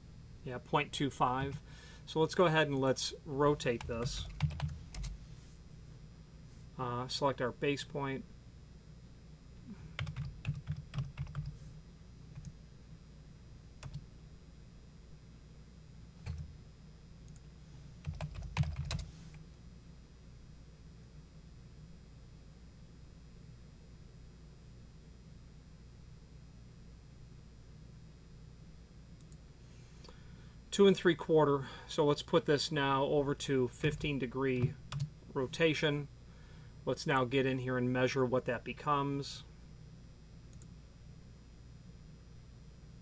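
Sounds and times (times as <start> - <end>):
faint low hum: 0.0 - 43.0
computer keyboard typing: 3.8 - 5.2, 10.0 - 11.6, 13.8 - 14.0, 16.2 - 16.5, 18.0 - 19.1, 34.6 - 35.1.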